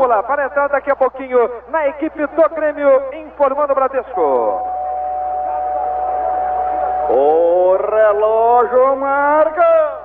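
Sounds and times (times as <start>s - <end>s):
steady jingle tone: 4.2s - 7.9s.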